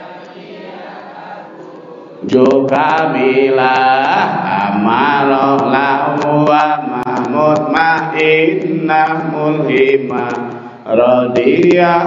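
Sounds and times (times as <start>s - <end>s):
man chanting over a microphone: 2.2s - 12.0s.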